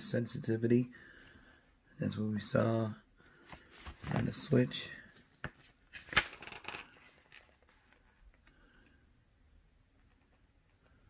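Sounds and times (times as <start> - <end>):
faint room noise: 0.0 - 11.0
paper rustling: 3.4 - 8.6.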